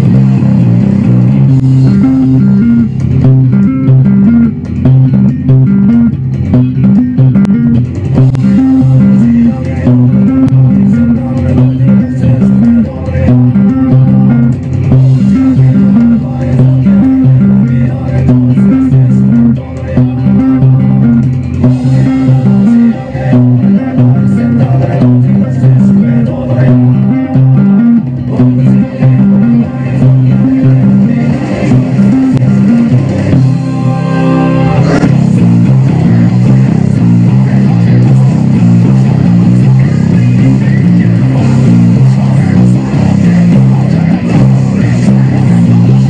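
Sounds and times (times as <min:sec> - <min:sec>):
drums: 0:00.0 - 0:46.0
electric bass metal riff: 0:00.0 - 0:46.0.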